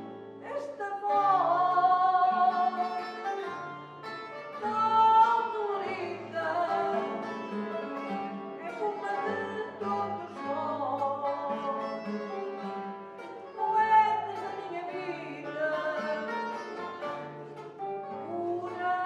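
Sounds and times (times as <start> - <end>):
guitars playing: 0.0 - 19.0
woman singing: 0.4 - 3.6, 4.5 - 12.6, 13.4 - 17.1, 18.0 - 19.0.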